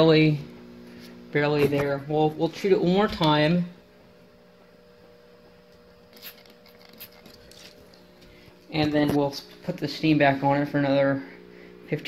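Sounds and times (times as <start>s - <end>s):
steady low hum: 0.0s - 12.0s
spray bottle squirts hissing: 6.1s - 7.3s.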